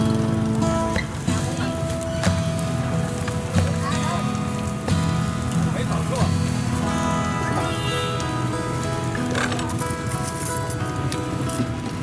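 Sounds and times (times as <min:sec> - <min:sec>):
voices: 0:00.0 - 0:09.9
steady hiss: 0:00.0 - 0:11.8.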